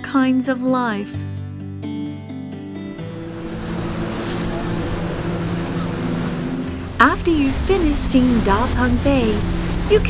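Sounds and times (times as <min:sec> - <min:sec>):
gentle background music: 0:00.0 - 0:10.0
motorboat engine drone: 0:02.9 - 0:10.0
water and wind rushing: 0:02.9 - 0:10.0.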